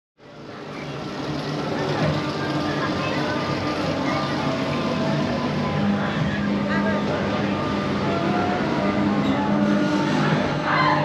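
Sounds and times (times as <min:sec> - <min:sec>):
people talking nearby: 0:00.6 - 0:11.0.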